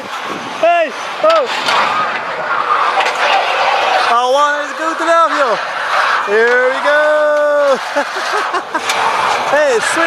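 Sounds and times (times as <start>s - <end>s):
man exclaiming: 6.4s - 7.9s.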